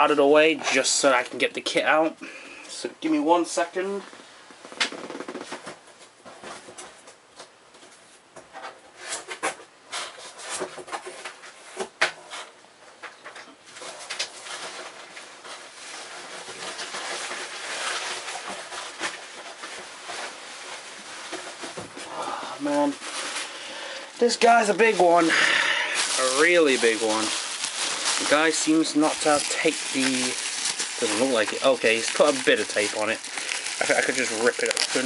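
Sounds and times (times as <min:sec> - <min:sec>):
cardboard scraping and rustling: 0:13.7 - 0:22.1, 0:24.2 - 0:35.0.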